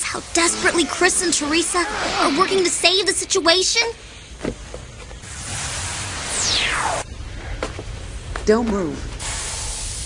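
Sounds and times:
steam hissing: 5.2 - 7.0, 9.1 - 10.0
falling whistling sweep: 6.0 - 7.1.

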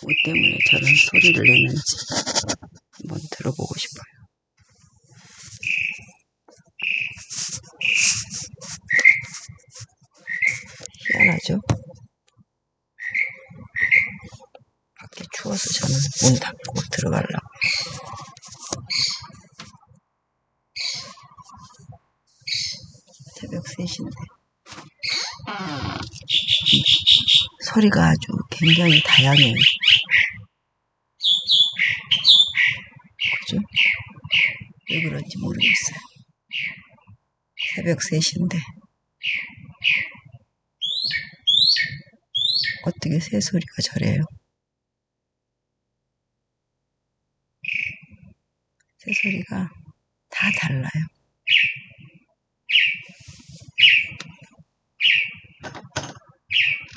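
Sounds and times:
bird calling at night: 5.5 - 6.1, 6.8 - 9.5, 10.2 - 11.4, 13.0 - 14.3, 25.0 - 27.6, 28.6 - 30.4, 31.2 - 35.1, 40.8 - 42.9, 51.5 - 52.0, 52.7 - 54.2, 55.0 - 55.5, 56.5 - 56.9.

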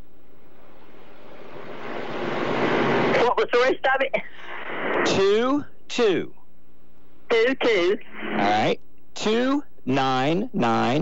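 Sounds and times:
phone line rushing hiss: 7.6 - 8.8.

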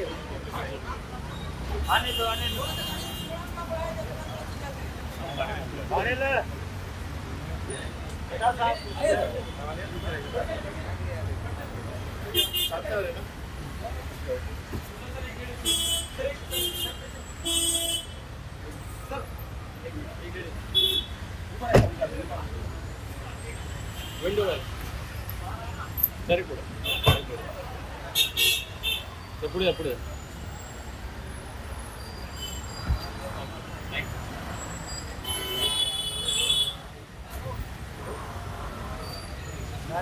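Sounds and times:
traffic: 0.0 - 40.0
short thump: 21.7 - 22.0
vehicle horn honking: 35.2 - 36.8.

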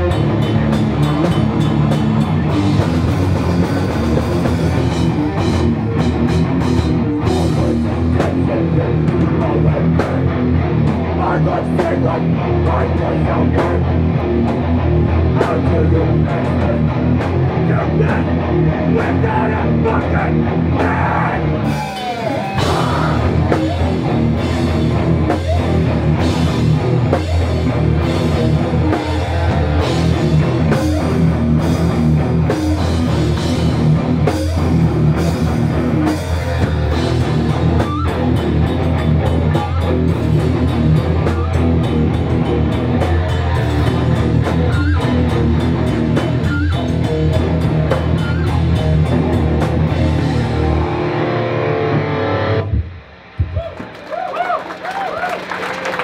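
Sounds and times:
distorted electric guitar: 0.0 - 56.0
hardcore punk band playing live: 0.0 - 56.0.

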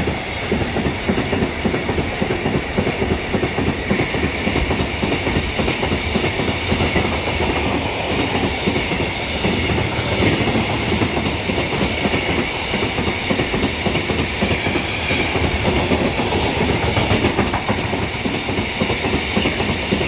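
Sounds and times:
steel wheels rolling on rail: 0.0 - 20.0.

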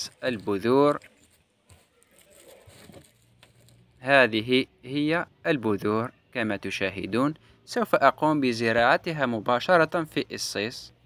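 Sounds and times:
fingertips rustling on cheesecloth: 0.0 - 3.9.

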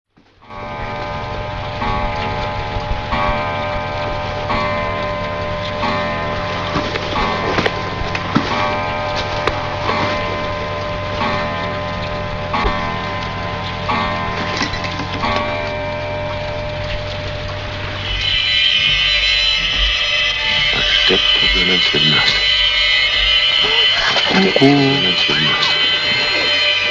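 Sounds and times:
pulsing tones ticking like a clock: 0.4 - 26.9
sustained low drone: 0.4 - 26.9.

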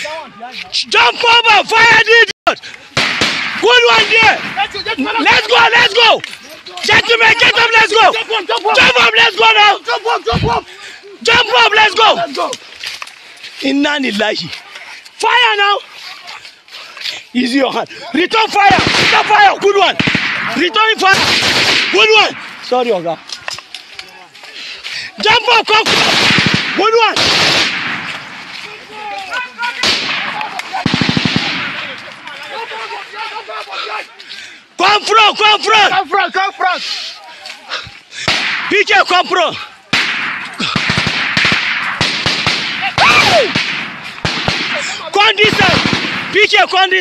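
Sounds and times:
gunshots in rapid succession: 2.9 - 5.7, 18.5 - 23.0, 25.6 - 28.6, 29.7 - 32.1, 38.2 - 38.9, 39.9 - 46.8
person shouting: 3.6 - 6.2, 6.9 - 12.5, 42.8 - 43.5.

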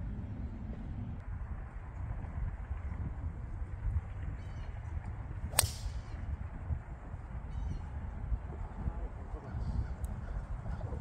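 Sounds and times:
wind rumble on microphone: 0.0 - 11.0
golf club striking ball: 5.5 - 6.0.

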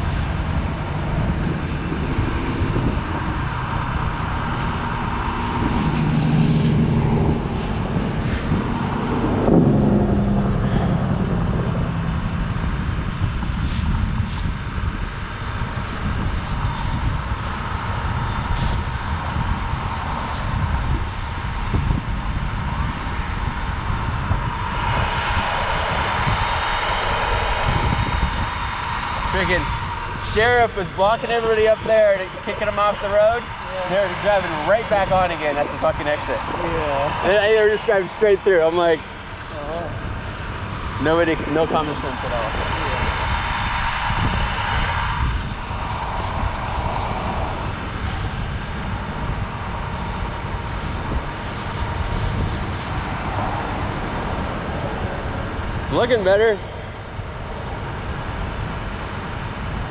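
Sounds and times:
vehicle engine rumble: 0.0 - 59.9
wind on microphone: 0.0 - 59.9.

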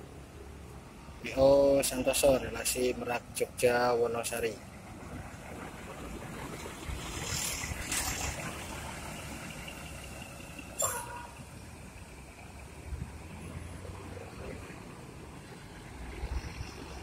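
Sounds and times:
bus engine rumble: 0.0 - 17.0.

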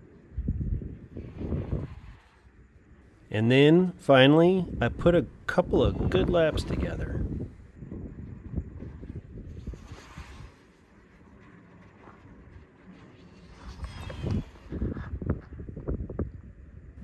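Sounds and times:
wind buffeting microphone: 0.0 - 3.3, 4.4 - 17.0.

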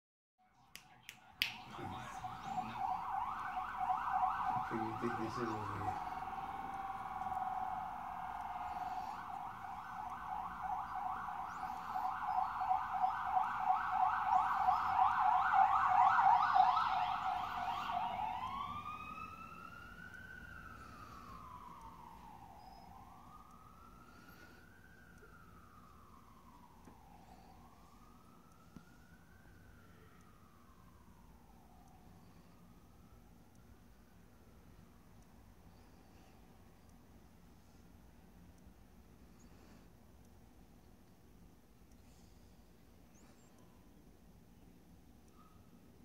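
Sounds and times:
distant siren yelp and wail: 0.4 - 46.0.

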